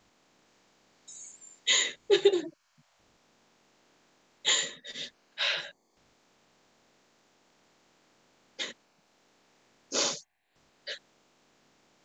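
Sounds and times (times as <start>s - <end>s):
woman gasping: 4.5s - 5.7s.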